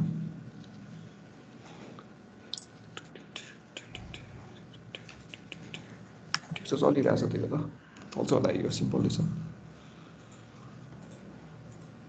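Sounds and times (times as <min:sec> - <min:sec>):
person speaking: 0:03.0 - 0:09.3.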